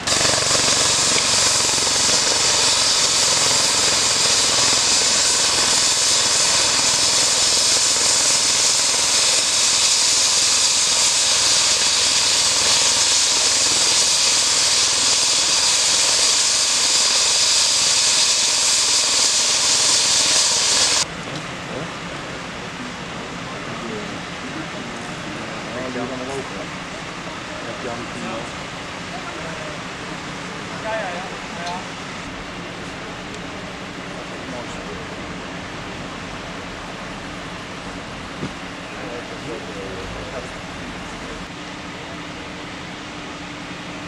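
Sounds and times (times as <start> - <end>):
helicopter turbine whine: 0.0 - 44.0.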